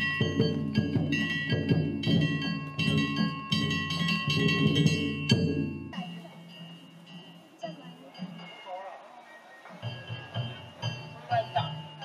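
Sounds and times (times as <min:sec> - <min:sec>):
beating drums: 0:00.0 - 0:08.7, 0:09.7 - 0:12.0.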